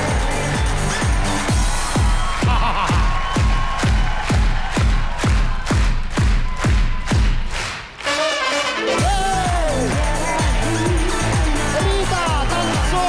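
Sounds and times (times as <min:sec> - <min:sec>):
kick drum beat: 0:00.0 - 0:07.6
live band playing disco-pop: 0:08.7 - 0:13.0.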